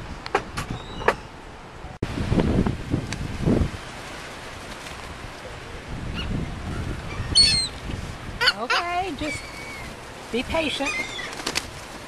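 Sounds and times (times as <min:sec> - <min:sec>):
seagull wings flapping: 0:04.0 - 0:05.4, 0:09.2 - 0:12.0
gull calls: 0:07.0 - 0:07.8, 0:08.4 - 0:10.0, 0:10.8 - 0:11.4.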